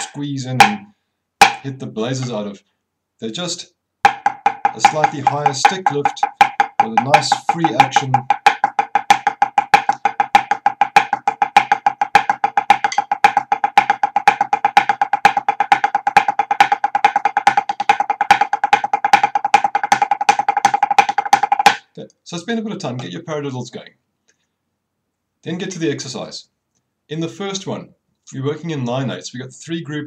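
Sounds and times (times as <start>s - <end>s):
snare drumsticks playing rudiments: 4.1s - 21.8s.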